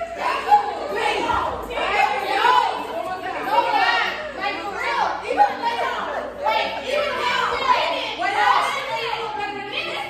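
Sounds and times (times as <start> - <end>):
women chattering: 0.0 - 10.0.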